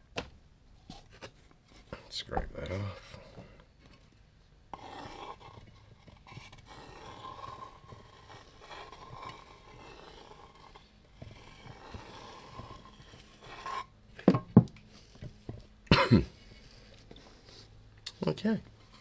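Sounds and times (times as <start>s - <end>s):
fingers rubbing wet paint on canvas: 4.8s - 13.9s
person coughing: 15.9s - 16.4s.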